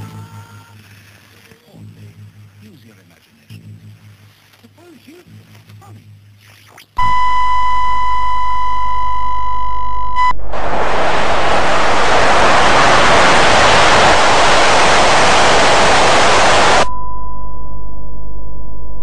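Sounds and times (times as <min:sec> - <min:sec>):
high-pitched test tone: 0:07.0 - 0:10.4
hissing tv static: 0:10.2 - 0:16.9.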